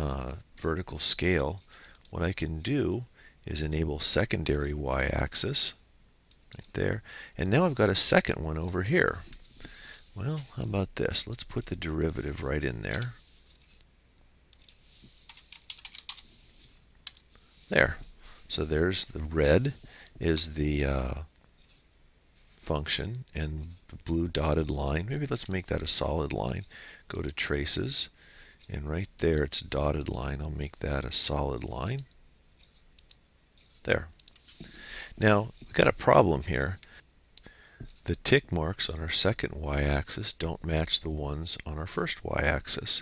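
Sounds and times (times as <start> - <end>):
computer mouse clicks: 6.3 - 6.7, 12.9 - 16.3, 16.9 - 17.4, 31.8 - 34.6
computer keyboard typing: 14.6 - 16.3, 17.0 - 17.3.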